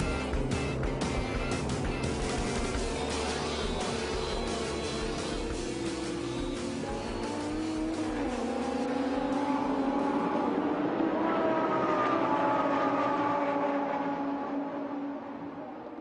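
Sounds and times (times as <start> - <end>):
race car engine accelerating: 0.0 - 16.0.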